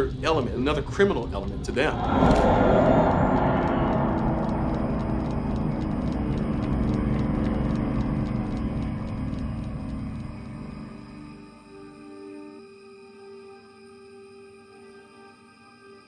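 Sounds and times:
horror film score drone: 0:00.1 - 0:12.4.

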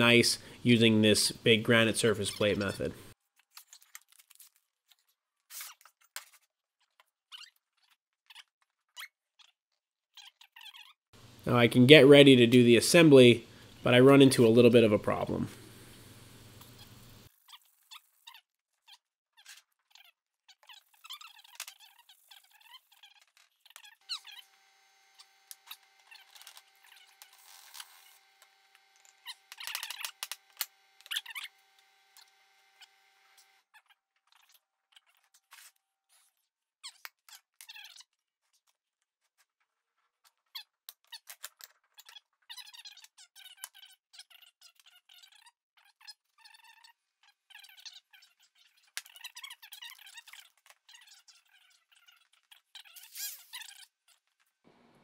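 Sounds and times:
metal parts clicking and squeaking: 0:02.2 - 0:11.0, 0:17.2 - 0:54.6.

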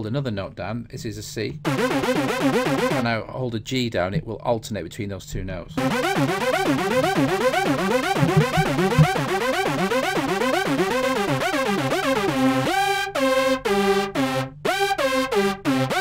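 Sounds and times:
arpeggiated synthesizer notes: 0:01.6 - 0:03.0, 0:05.8 - 0:16.0.

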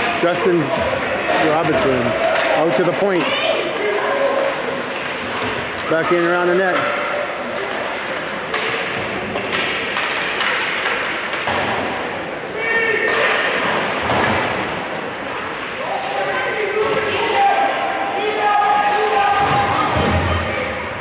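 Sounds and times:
hubbub of voices: 0:00.0 - 0:21.0
puck and sticks hitting boards: 0:00.7 - 0:03.4, 0:04.3 - 0:12.2, 0:13.1 - 0:15.7.

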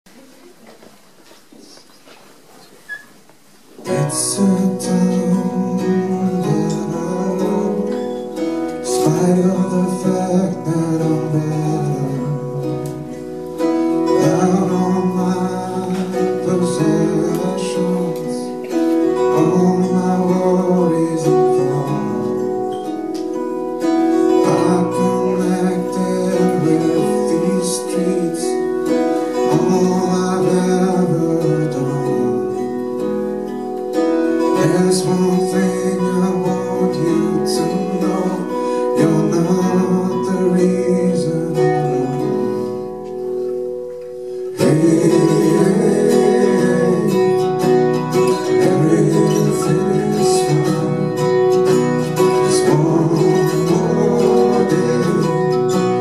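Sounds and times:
acoustic guitars strumming: 0:02.4 - 0:56.0.

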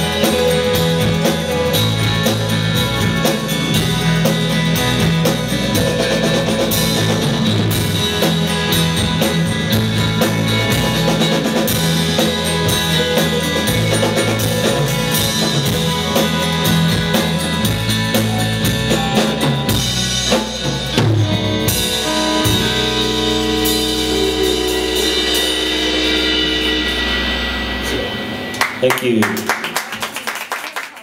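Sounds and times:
held guitar chord ringing: 0:00.0 - 0:28.8
drum strokes: 0:00.0 - 0:28.9
band playing: 0:00.0 - 0:30.2.

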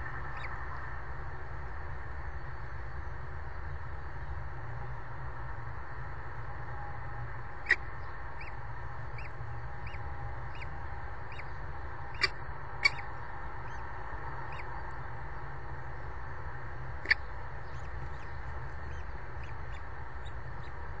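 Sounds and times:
steady low hum: 0:00.0 - 0:21.0
bird chick begging peeps: 0:00.3 - 0:00.6, 0:07.6 - 0:15.0, 0:17.0 - 0:20.9
sharp chick squeaks: 0:12.2 - 0:13.8, 0:17.0 - 0:18.3.

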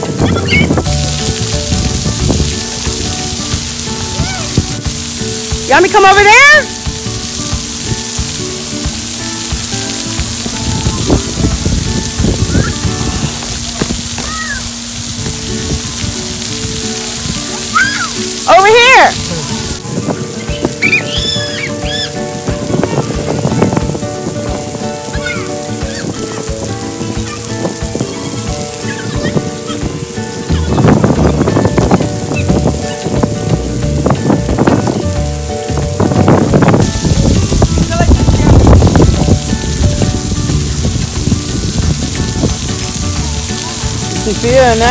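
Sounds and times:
background music: 0:00.0 - 0:44.9
water jets spraying on concrete: 0:00.0 - 0:44.9.

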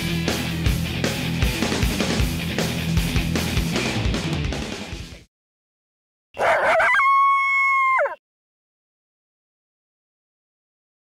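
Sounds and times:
dog howling: 0:06.4 - 0:08.2.

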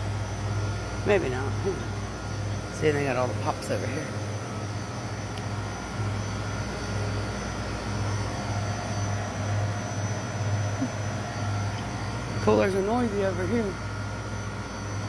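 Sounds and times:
freezer units humming: 0:00.0 - 0:15.0.

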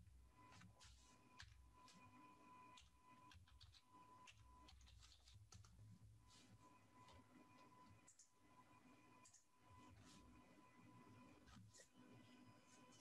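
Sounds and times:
computer keyboard typing: 0:00.4 - 0:06.0, 0:07.0 - 0:08.3.

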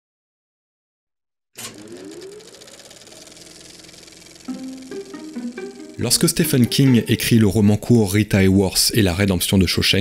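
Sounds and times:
projector mechanical clatter: 0:01.6 - 0:07.4
projector motor whine: 0:01.6 - 0:07.4.

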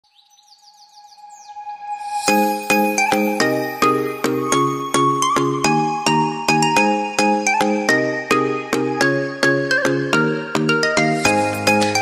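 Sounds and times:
bird chirping: 0:00.0 - 0:04.3.

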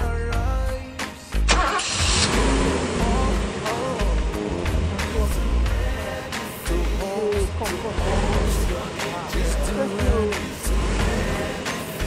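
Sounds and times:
background music with steady beat: 0:00.0 - 0:12.0
car engine starting: 0:01.4 - 0:12.0.

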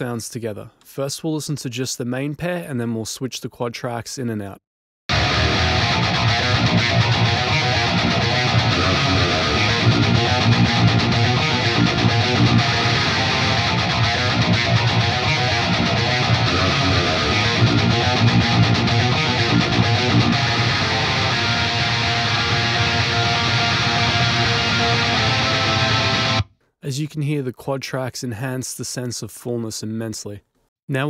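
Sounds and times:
distorted metal rhythm guitars: 0:05.1 - 0:26.5
raw high-gain guitars: 0:05.1 - 0:26.5.

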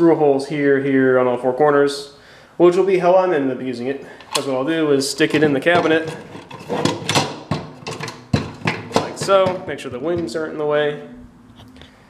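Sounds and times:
plastic box knocking against wood: 0:07.0 - 0:10.4.

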